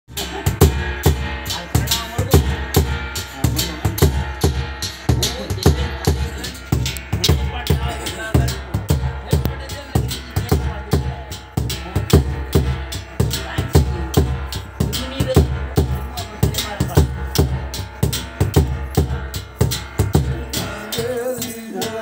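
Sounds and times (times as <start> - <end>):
barrel drum beaten with stick: 0.1 - 22.0.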